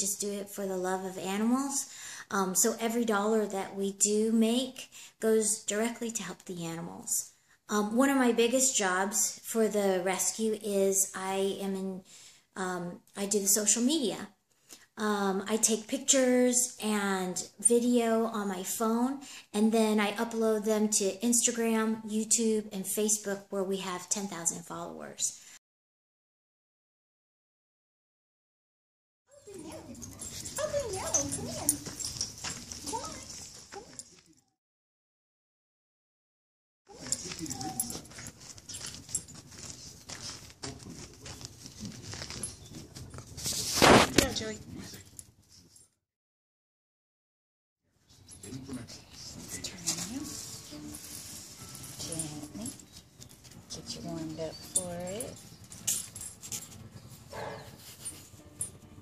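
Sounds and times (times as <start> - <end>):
woman speaking: 0.0 - 12.0, 12.6 - 14.3, 15.0 - 25.4, 49.5 - 50.4, 52.0 - 52.8, 53.7 - 55.4
small dog whining: 36.9 - 38.2.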